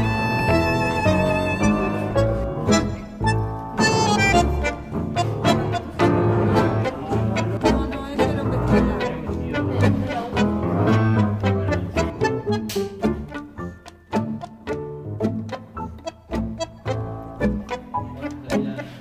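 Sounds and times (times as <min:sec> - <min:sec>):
string quartet playing tango: 0:00.0 - 0:19.0.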